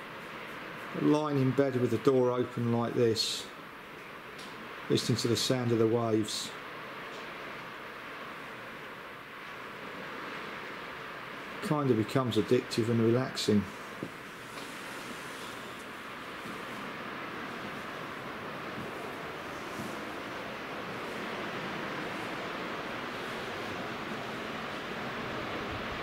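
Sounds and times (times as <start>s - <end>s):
surf washing onto beach: 0.0s - 26.0s.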